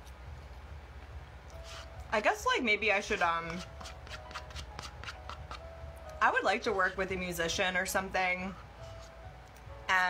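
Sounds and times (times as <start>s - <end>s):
utensil scraping in cup: 3.1s - 5.6s.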